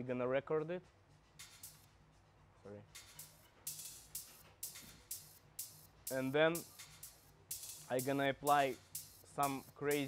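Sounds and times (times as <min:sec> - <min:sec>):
electronic hi-hat loop: 0:00.6 - 0:10.0.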